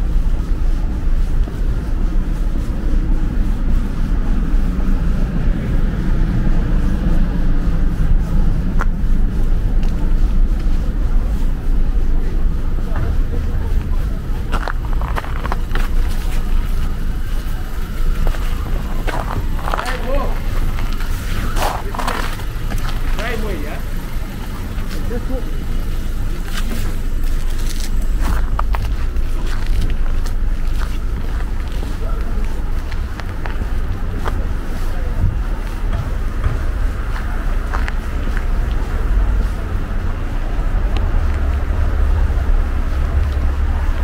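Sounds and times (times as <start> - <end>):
footsteps on sidewalk: 0.0 - 44.0
indistinct voices talking: 0.0 - 44.0
traffic rumble: 0.0 - 44.0.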